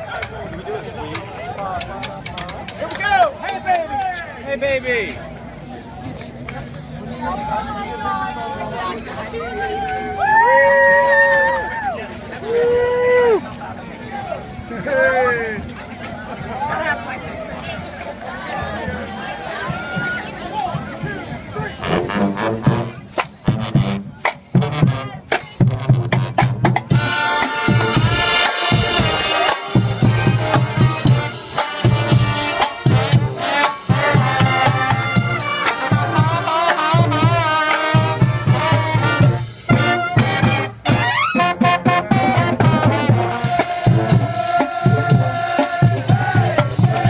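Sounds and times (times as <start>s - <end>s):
drumline hits: 18.6s - 47.0s
brass playing melody: 21.8s - 47.0s.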